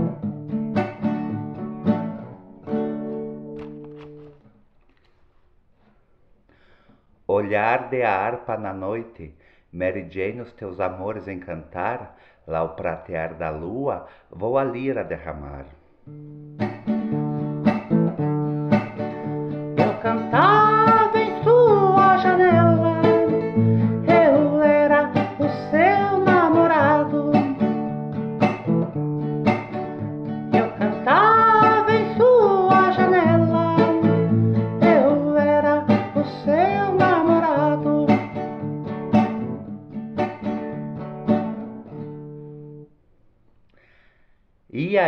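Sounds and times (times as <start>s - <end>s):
plucked guitar: 0.0s - 5.0s, 16.0s - 42.9s
wordless singing: 19.8s - 27.7s, 30.5s - 38.3s.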